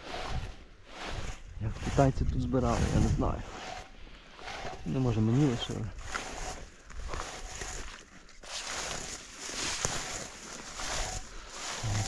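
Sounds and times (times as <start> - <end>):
rustling and scraping leaves: 0.0 - 12.0.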